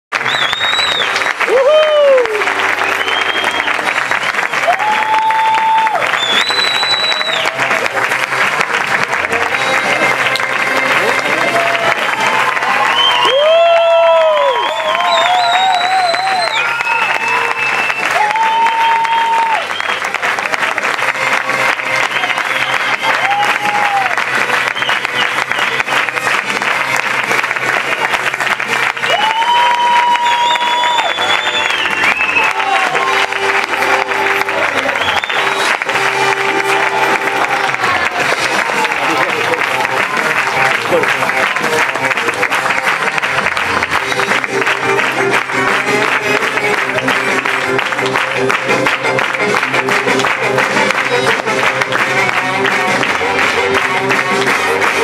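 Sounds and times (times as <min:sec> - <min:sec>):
audience applauding: 0:00.1 - 0:55.0
music with held notes: 0:07.4 - 0:12.7, 0:32.4 - 0:55.0.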